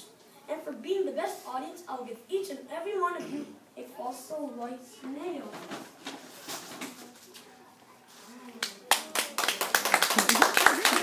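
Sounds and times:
children clapping: 8.6s - 11.0s.

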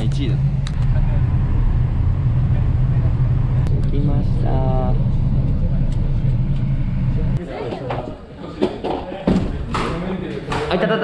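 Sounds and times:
coach bus rumble from inside: 0.0s - 7.4s.

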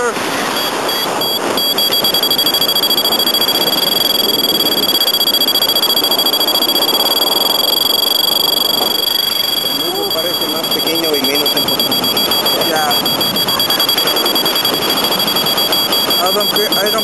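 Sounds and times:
variometer beeping and tone: 0.5s - 17.0s.

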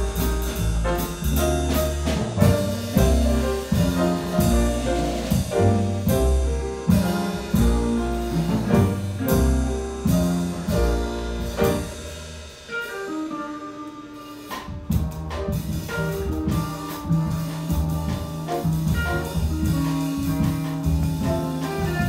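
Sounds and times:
jazz guitar: 0.0s - 22.0s
piano: 0.0s - 22.0s
walking upright bass line: 0.0s - 22.0s.

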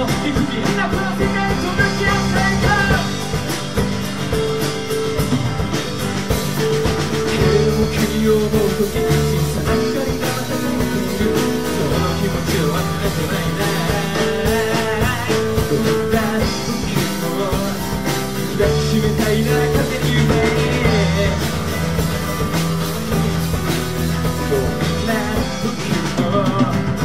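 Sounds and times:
person singing: 0.0s - 3.6s, 7.1s - 22.8s, 24.0s - 27.0s
drum kit beat: 0.0s - 27.0s
keyboard: 0.0s - 27.0s.

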